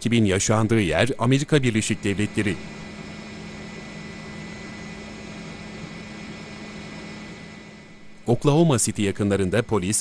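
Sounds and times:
helicopter engine and rotor: 1.5s - 10.0s.

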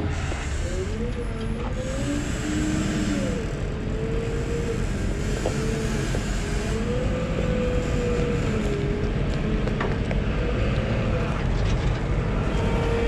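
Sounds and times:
diesel engine under load: 0.0s - 13.0s.

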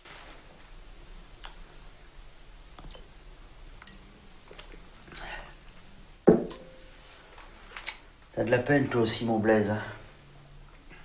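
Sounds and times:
glass bottle set down on wood: 6.3s - 6.8s.

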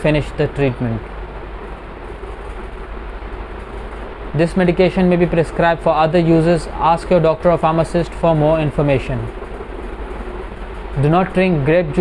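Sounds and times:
constant low hum: 0.0s - 12.0s.

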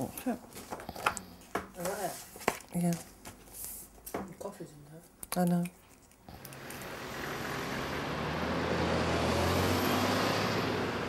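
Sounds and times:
road noise: 6.3s - 11.0s
bus engine rumble: 6.4s - 11.0s.

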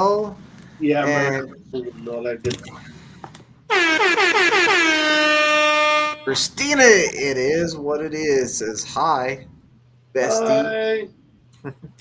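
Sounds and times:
truck air horn blast: 3.7s - 6.4s.

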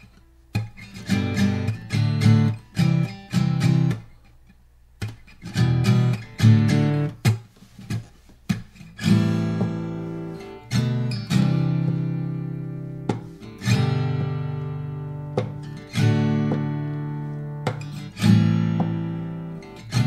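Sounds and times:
acoustic guitar strumming: 0.0s - 4.4s, 5.0s - 20.0s.

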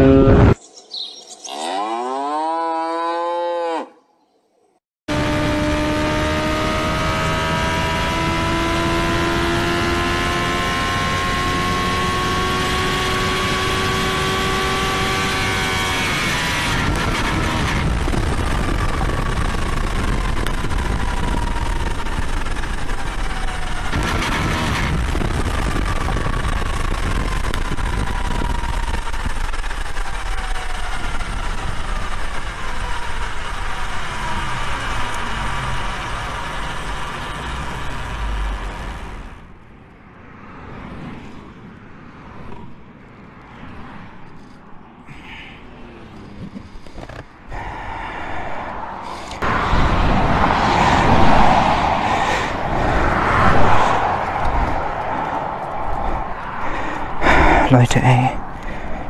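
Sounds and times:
heavy wind rush: 0.0s - 0.6s, 40.1s - 59.0s
motorcycle engine at high revs: 0.0s - 0.6s, 5.1s - 39.5s.

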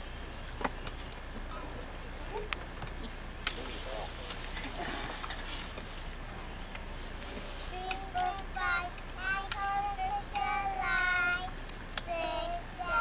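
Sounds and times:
child singing: 7.7s - 13.0s.

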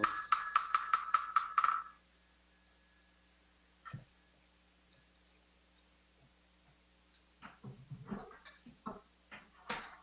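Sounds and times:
ringing bowl bell: 0.0s - 2.0s.

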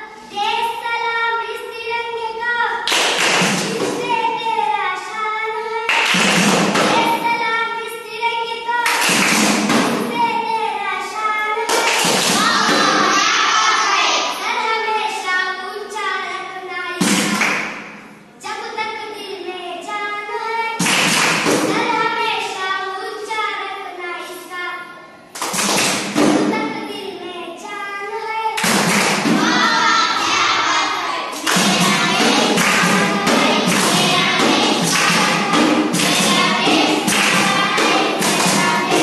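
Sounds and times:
group hand claps: 2.8s - 3.9s, 5.9s - 7.2s, 8.8s - 10.0s, 11.7s - 13.3s, 17.0s - 17.9s, 20.8s - 21.8s, 25.3s - 26.3s, 28.6s - 39.0s
voices calling out together: 12.3s - 15.2s, 29.2s - 39.0s.

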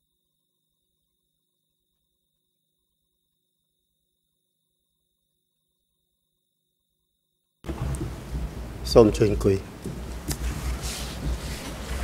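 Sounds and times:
faint rustling: 7.7s - 12.0s
low rumble: 7.7s - 12.0s
man speaking: 8.9s - 9.7s.

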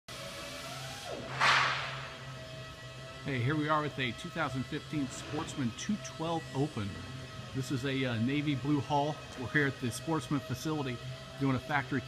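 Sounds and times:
factory hall hum: 0.1s - 12.0s
short loud rush of noise: 1.3s - 2.2s.

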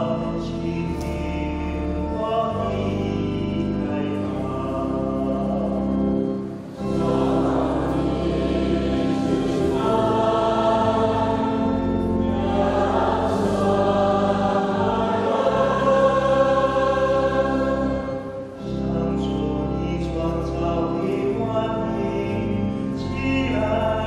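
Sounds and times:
church choir singing: 0.0s - 24.0s
low steady accompaniment: 0.0s - 24.0s.

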